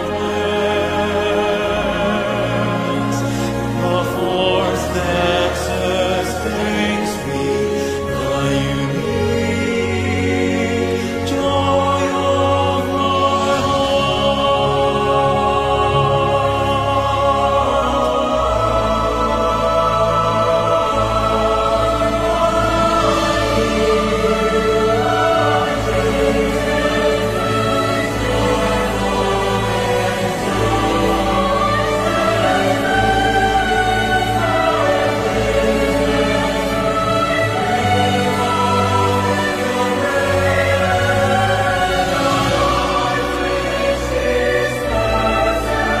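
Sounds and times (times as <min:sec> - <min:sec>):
choir singing sustained voices: 0:00.0 - 0:46.0
choral devotional song: 0:00.0 - 0:46.0.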